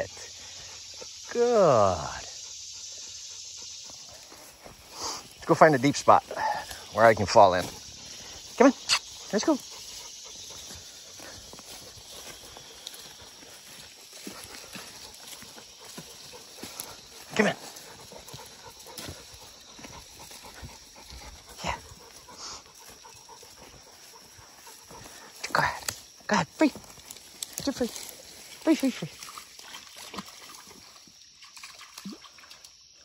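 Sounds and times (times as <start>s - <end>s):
footsteps: 3.9s - 30.6s
leaves rustling: 4.1s - 31.1s.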